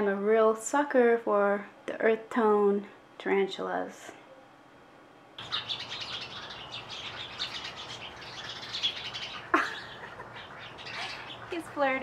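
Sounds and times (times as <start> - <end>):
small birds chirping: 5.4 - 12.0.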